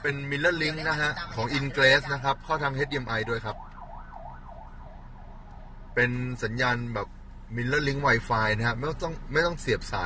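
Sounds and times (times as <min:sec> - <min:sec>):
siren wailing: 0:01.8 - 0:05.5.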